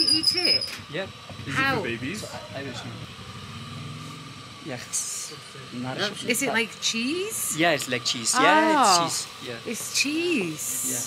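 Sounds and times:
vehicle engine idling: 0.0 - 9.4.

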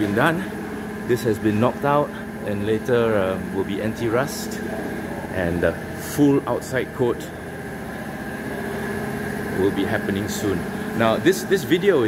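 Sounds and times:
machine drone: 0.0 - 12.0.

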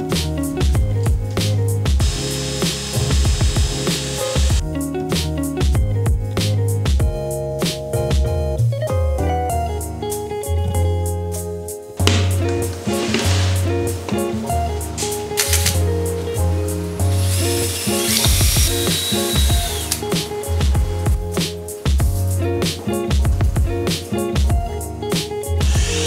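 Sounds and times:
background music with bass line: 0.0 - 26.0
power drill whirring: 2.0 - 4.6, 17.1 - 21.1, 25.7 - 26.0.

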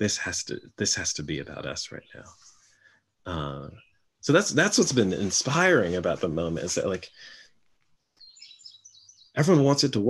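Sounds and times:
faint bird chirps: 0.0 - 2.5, 3.3 - 7.4, 8.2 - 10.0.

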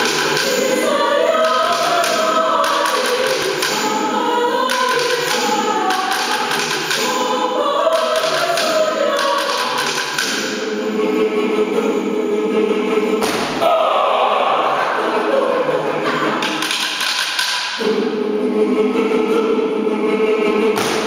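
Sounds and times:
mixed choir singing: 0.0 - 21.0.

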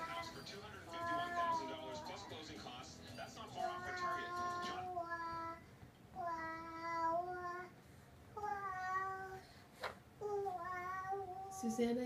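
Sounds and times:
toddler singing: 0.0 - 2.4, 3.6 - 7.8, 8.4 - 9.5, 10.2 - 11.5.

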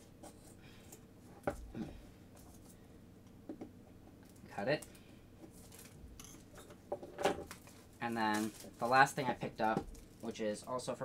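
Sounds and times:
plastic wrap crinkling: 7.5 - 10.8.

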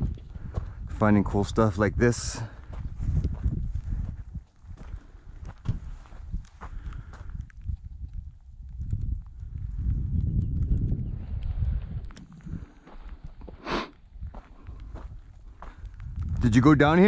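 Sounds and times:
low rumble on microphone: 0.0 - 16.8
footsteps crunching on gravel: 2.6 - 7.3, 12.2 - 16.6.

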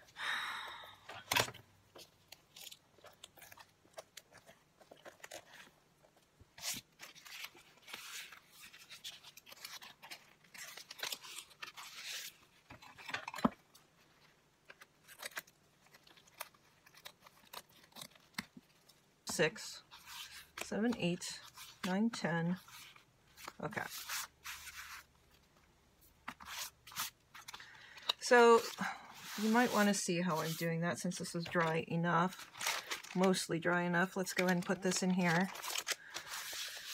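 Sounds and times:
paper rustling and tearing: 6.5 - 19.0, 22.6 - 25.4, 26.2 - 33.5, 34.2 - 36.9.

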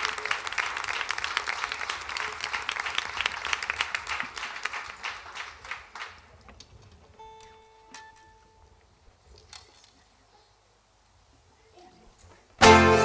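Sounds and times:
audience applause: 0.0 - 6.5.

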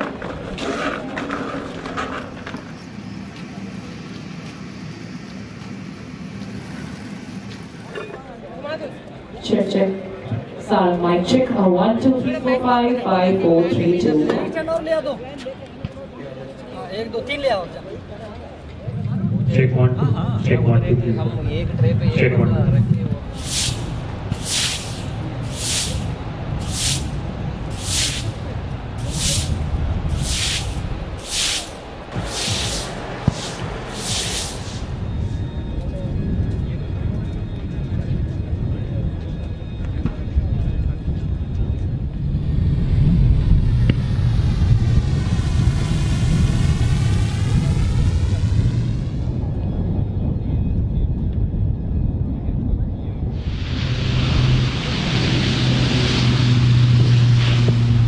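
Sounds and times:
jet aircraft passing overhead: 0.0 - 15.3, 16.3 - 58.0
low rumble: 18.4 - 58.0
sharp hissing bursts: 23.3 - 35.0, 53.4 - 58.0.

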